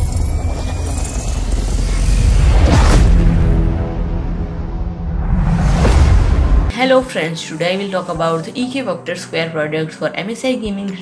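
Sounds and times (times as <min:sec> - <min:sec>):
deep steady rumble: 0:00.0 - 0:06.7.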